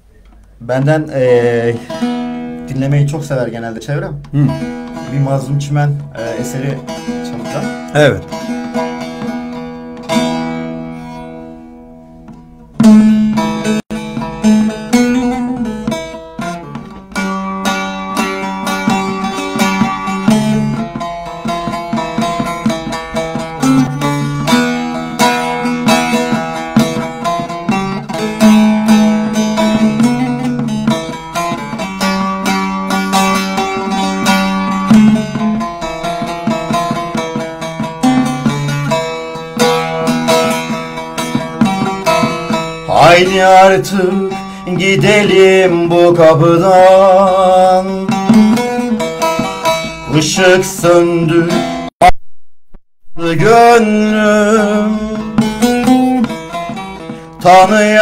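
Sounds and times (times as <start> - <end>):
plucked lute melody: 0.1 - 52.2, 53.2 - 58.0.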